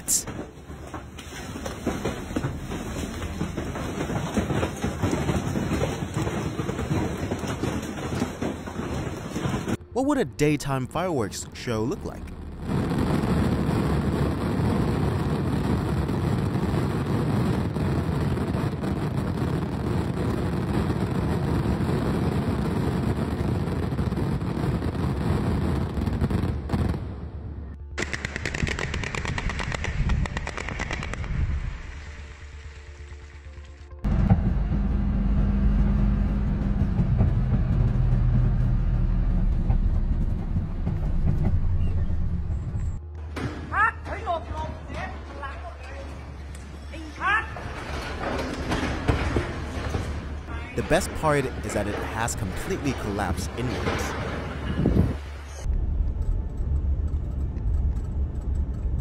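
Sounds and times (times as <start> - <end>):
fireworks crackling bangs: 0.1 - 9.8, 11.6 - 27.3, 28.0 - 34.5, 47.6 - 55.7
low rumbling rush: 1.8 - 28.0, 28.8 - 43.4, 47.6 - 59.0.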